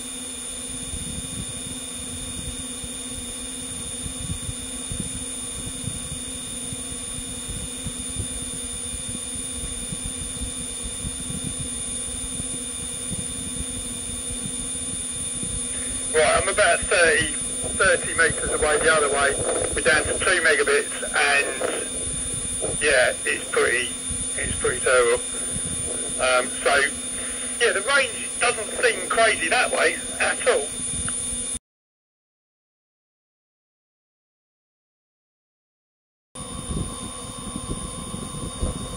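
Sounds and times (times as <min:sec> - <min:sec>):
electronic hum of fixed tones: 0:00.0 - 0:31.6, 0:36.4 - 0:38.9
man speaking: 0:15.7 - 0:30.8.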